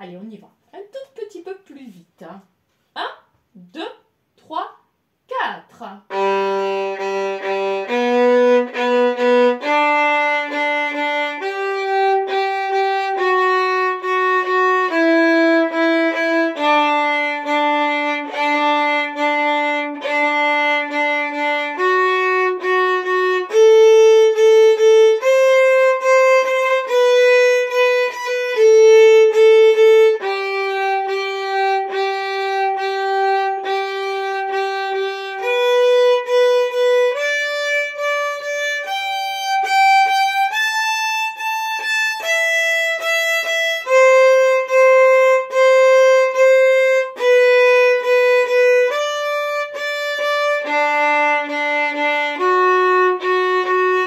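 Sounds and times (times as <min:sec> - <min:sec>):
solo violin arpeggios: 0:06.0 - 0:54.0.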